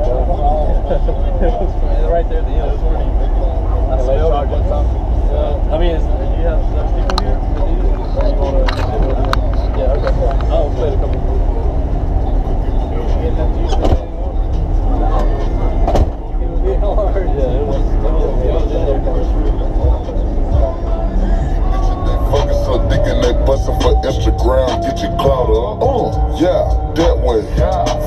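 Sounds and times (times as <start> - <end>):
deep rumble: 0.0 - 28.0
people talking: 0.0 - 28.0.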